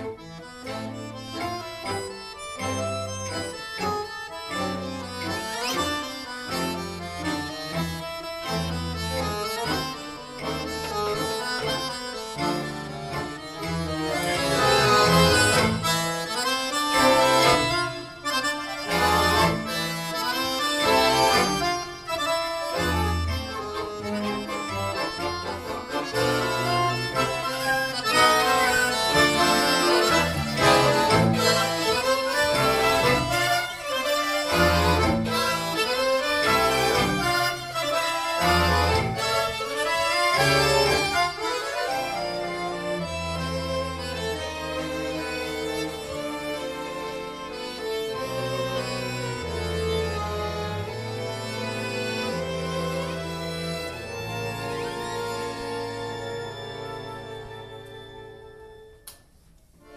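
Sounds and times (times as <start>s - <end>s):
accordion and string ensemble: 0.0s - 59.9s
accordion melody: 0.0s - 59.9s.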